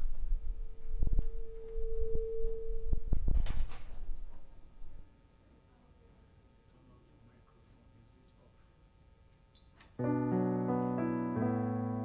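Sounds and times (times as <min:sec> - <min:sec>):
steady pure tone: 0:00.0 - 0:03.4, 0:10.0 - 0:12.0.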